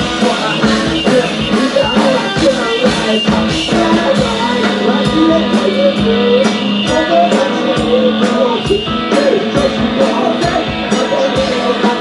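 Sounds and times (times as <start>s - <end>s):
drum kit: 0.0s - 12.0s
electric guitar: 0.0s - 12.0s
person singing: 0.0s - 12.0s.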